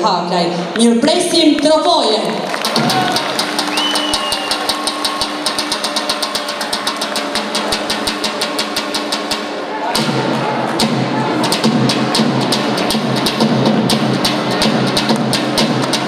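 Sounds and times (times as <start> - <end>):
heavier fuller drum part: 2.5 - 16.0.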